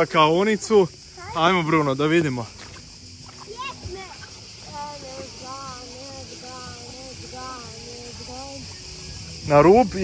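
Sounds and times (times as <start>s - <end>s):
cicadas droning: 0.0s - 10.0s
distant indistinct voices: 0.0s - 10.0s.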